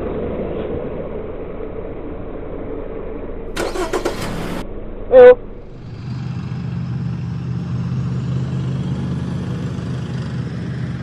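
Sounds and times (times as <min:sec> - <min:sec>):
truck engine running: 0:03.5 - 0:11.0.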